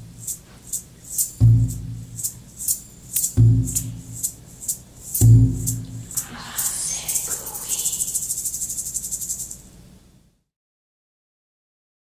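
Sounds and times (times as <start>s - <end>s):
shaker rattling: 0.0s - 9.8s.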